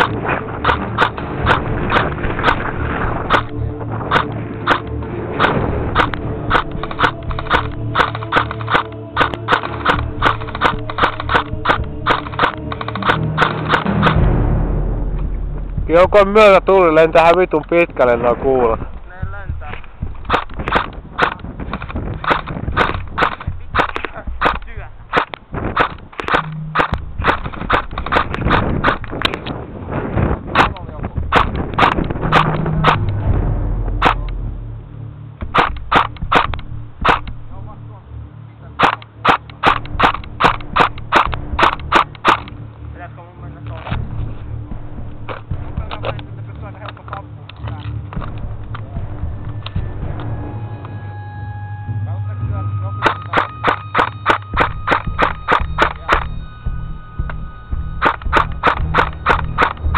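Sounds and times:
electric rifle firing shots: 0.0s - 14.2s, 20.2s - 29.4s, 30.6s - 33.2s, 35.5s - 37.4s, 38.8s - 42.6s, 53.0s - 56.4s, 58.0s - 59.9s.

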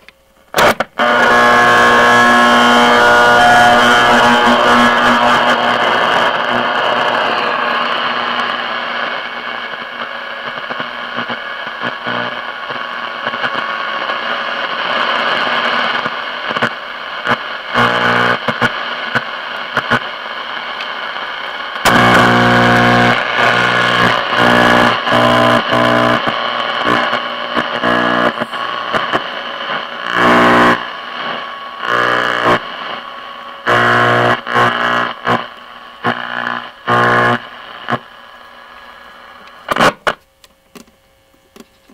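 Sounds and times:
radio static hiss: 0.0s - 41.9s
radio station snatches: 0.5s - 40.2s
steady radio tones: 0.6s - 40.2s.

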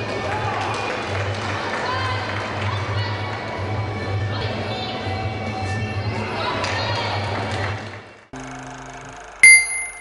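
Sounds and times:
small bell ding: 9.4s - 10.0s.

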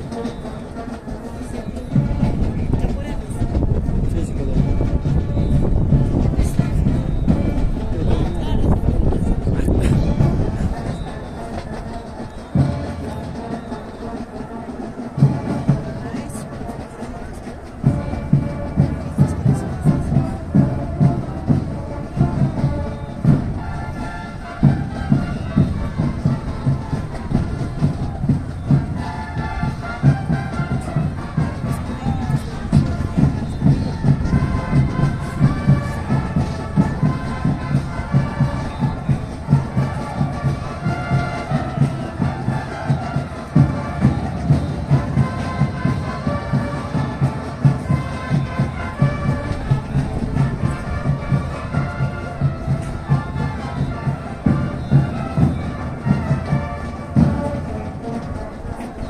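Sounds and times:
marching band brass: 0.0s - 59.0s
bass drum beat: 1.9s - 11.7s, 17.8s - 23.6s.

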